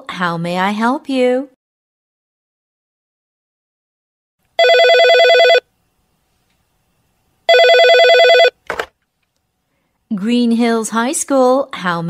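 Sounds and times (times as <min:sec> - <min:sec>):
telephone ringing: 0:04.6 - 0:05.7, 0:07.5 - 0:08.6.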